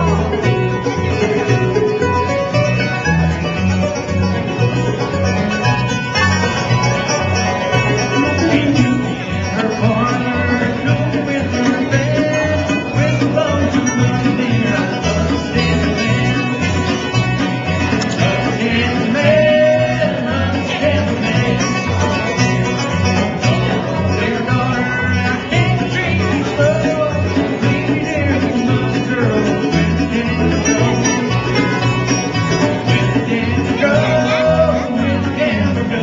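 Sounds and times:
acoustic guitars: 0.0s - 36.0s
banjo: 0.0s - 36.0s
mandolin: 0.0s - 36.0s
upright bass: 0.0s - 36.0s.

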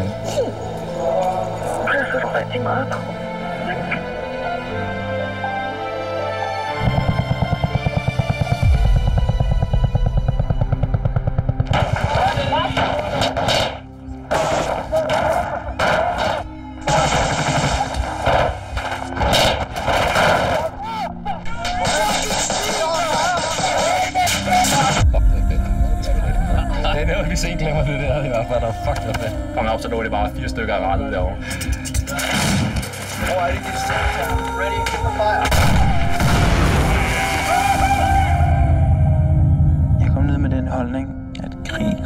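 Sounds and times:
gunfire: 6.8s - 20.8s, 21.8s - 25.0s.

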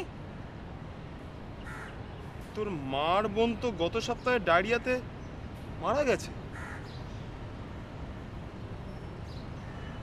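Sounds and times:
low outdoor background hum: 0.0s - 10.0s
crow caw: 1.6s - 2.0s, 6.5s - 7.0s.

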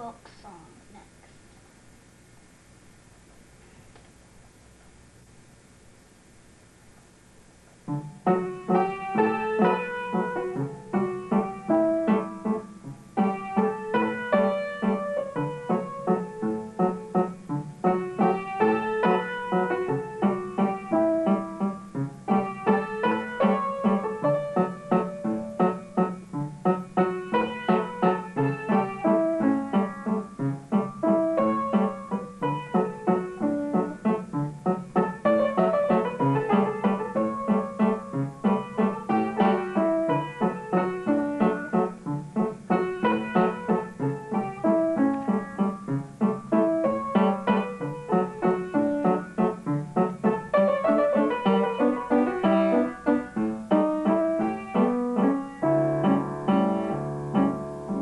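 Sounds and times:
upright piano notes: 7.7s - 58.0s.

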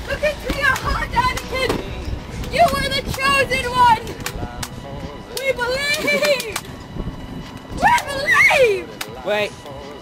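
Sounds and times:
boy yelling in wavering cry: 7.8s - 8.9s.

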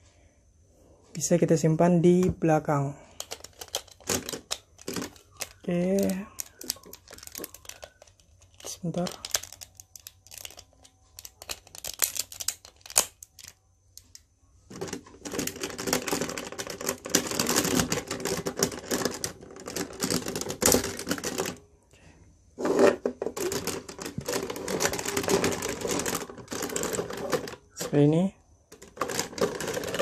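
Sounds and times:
plastic parts clattering: 3.0s - 21.6s, 22.6s - 30.0s
plastic toy parts clicking: 3.2s - 21.6s, 23.3s - 28.0s, 28.7s - 30.0s.

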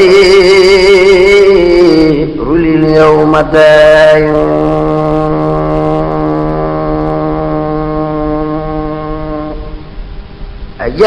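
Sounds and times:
man chanting a long note: 0.0s - 9.9s.

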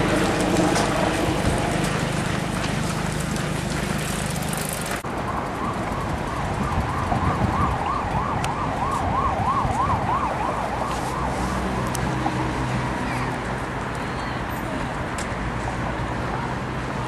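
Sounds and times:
siren fast wail: 5.6s - 11.8s.

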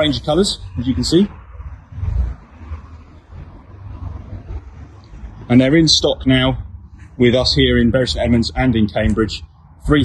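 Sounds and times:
wind buffeting microphone: 0.0s - 5.5s.

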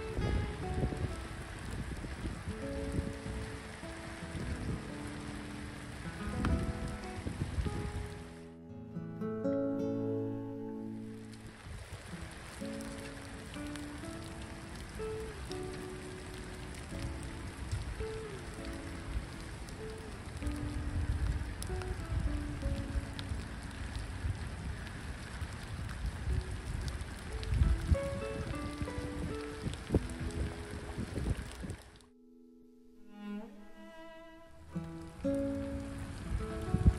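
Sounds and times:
rain pattering on water: 0.0s - 8.6s, 10.8s - 32.2s, 33.1s - 36.9s
slow background music: 2.5s - 11.6s, 12.4s - 24.0s, 26.6s - 36.9s.

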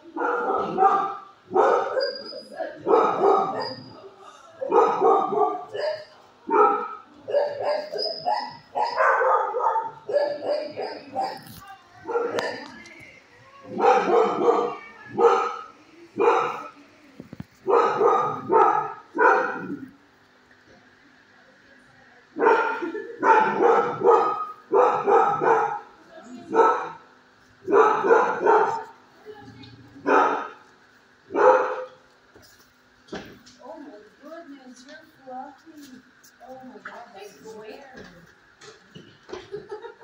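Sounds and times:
dogs barking: 0.0s - 12.8s, 13.7s - 16.8s, 17.6s - 20.0s, 22.4s - 29.1s, 30.0s - 32.0s.

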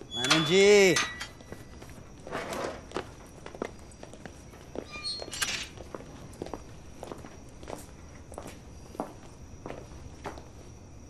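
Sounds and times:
footsteps walking: 1.3s - 10.8s.

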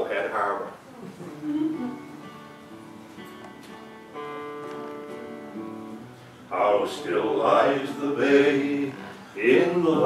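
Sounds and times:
acoustic guitar chords ringing: 1.6s - 10.0s.

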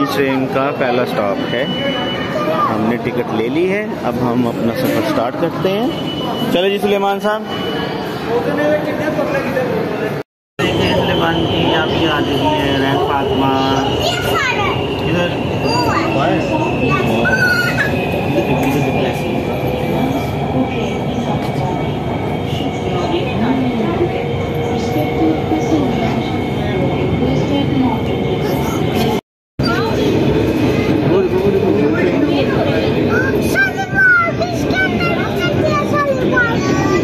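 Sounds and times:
voices: 0.0s - 37.0s
children squealing: 1.6s - 2.9s, 13.6s - 18.5s.

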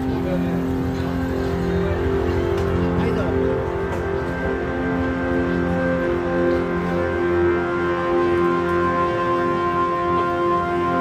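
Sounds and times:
crowd of voices: 0.0s - 11.0s
music playing from shops: 0.0s - 11.0s.

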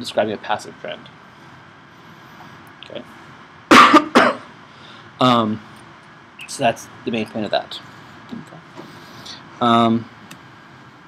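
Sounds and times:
man coughing: 3.7s - 4.5s.

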